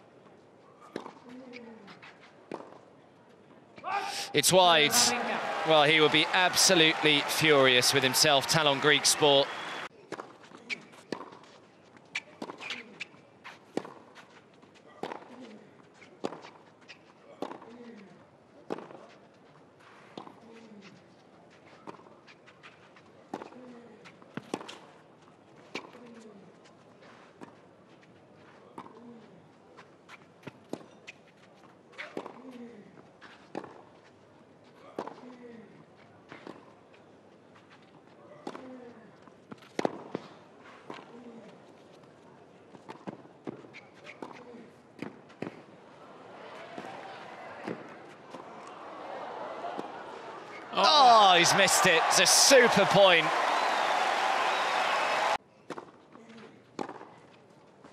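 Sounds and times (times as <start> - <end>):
player grunting: 50.8 - 53.3.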